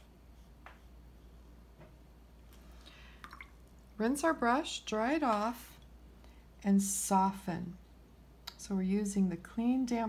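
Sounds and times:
small water drips and plinks: 2.8 - 3.9.

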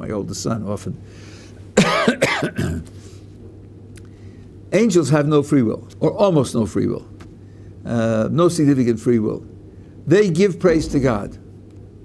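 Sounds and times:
man clearing his throat: 1.8 - 2.9
man coughing: 1.8 - 2.9.

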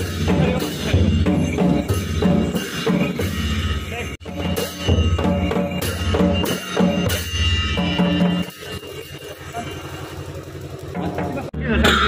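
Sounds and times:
low rumble of street noise: 0.0 - 12.0.

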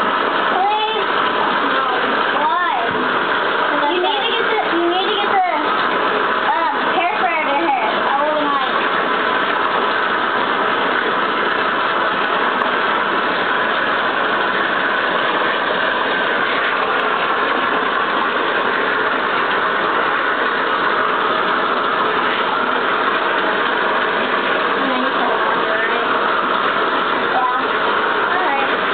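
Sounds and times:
water running into bathtub: 0.0 - 28.9.

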